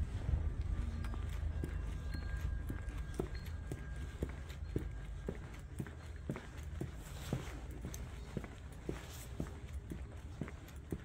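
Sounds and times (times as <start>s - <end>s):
footsteps on concrete: 0.0s - 11.0s
steady low rumble: 0.0s - 11.0s.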